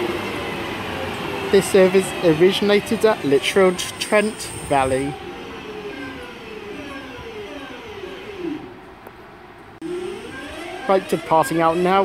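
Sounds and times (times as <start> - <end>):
electric train motors whining: 0.0 - 8.8, 9.8 - 12.0.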